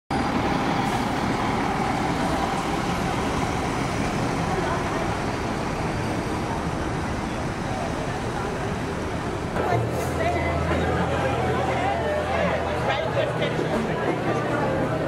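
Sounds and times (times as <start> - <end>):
bus passing close: 0.1 - 15.0
street traffic noise: 0.1 - 15.0
people talking nearby: 2.1 - 15.0.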